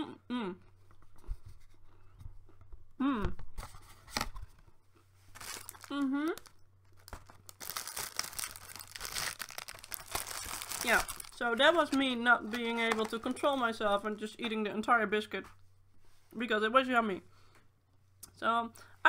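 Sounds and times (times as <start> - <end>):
closed-mouth hums: 0.0 - 1.4, 2.9 - 3.5
plastic packaging crackling: 5.3 - 13.5.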